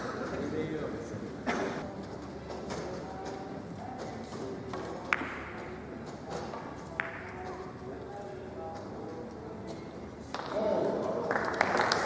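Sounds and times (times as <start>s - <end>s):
background chatter: 0.0s - 12.0s
cue knocks and rolling balls: 4.0s - 7.6s.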